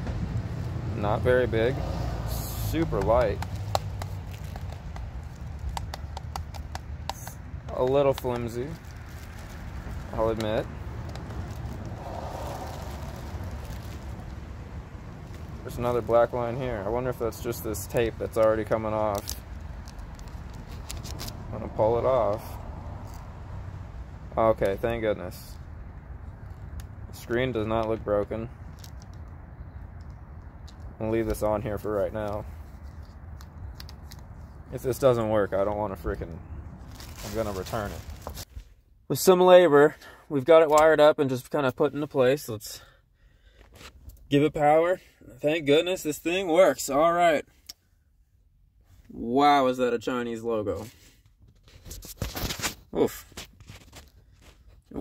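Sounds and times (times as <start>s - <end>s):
steady low rumble: 0.0s - 39.0s
plastic clicks and taps: 3.0s - 8.2s
plastic film crinkling: 3.2s - 7.1s, 7.8s - 16.2s, 18.0s - 21.5s, 36.8s - 38.5s.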